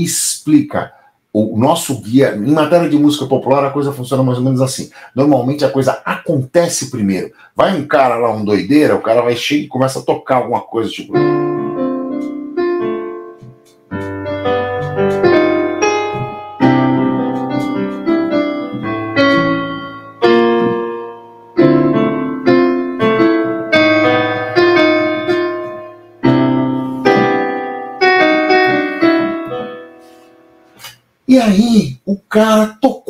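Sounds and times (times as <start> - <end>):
electronic keyboard piano chords: 11.0 - 31.1.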